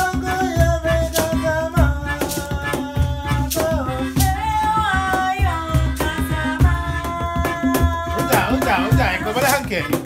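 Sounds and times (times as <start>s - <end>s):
acoustic guitar: 0.0s - 10.0s
cajon strokes: 0.0s - 10.0s
person singing: 0.0s - 10.0s
shaker: 0.0s - 10.0s.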